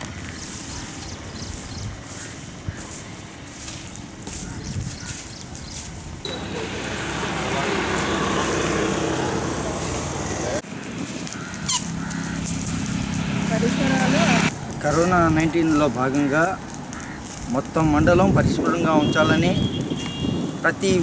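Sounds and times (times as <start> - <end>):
vehicle engine running: 6.3 - 14.8.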